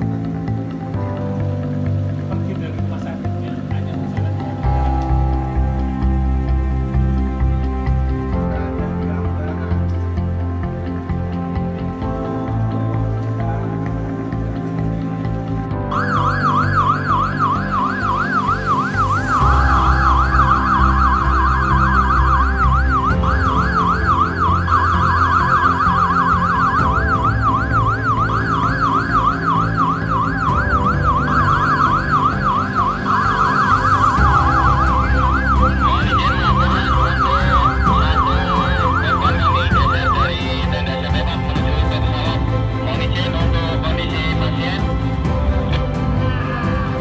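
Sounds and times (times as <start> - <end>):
backing music: 0.0 - 47.0
ambulance siren yelping: 15.9 - 42.8.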